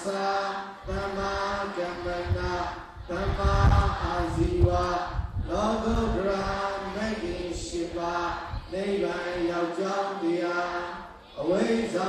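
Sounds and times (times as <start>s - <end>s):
person chanting: 0.0s - 12.0s
low rumble: 2.0s - 6.7s.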